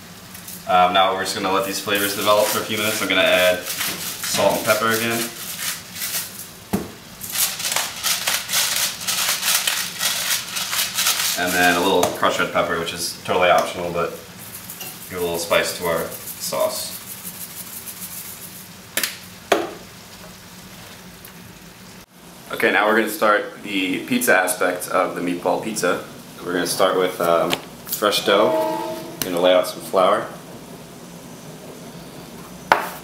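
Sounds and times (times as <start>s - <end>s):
faint room hiss: 0.0s - 33.0s.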